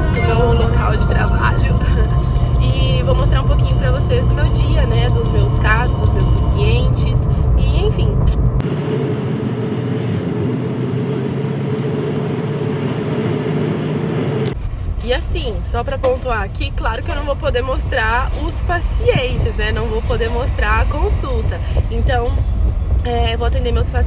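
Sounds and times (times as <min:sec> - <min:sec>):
car cabin rumble: 0:00.0 - 0:11.8, 0:12.9 - 0:24.0.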